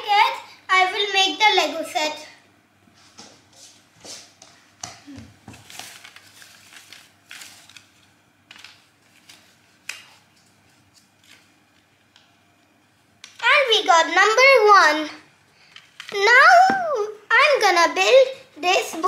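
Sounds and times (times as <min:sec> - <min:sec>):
paper rustling and tapping on floor: 0:03.1 - 0:12.3.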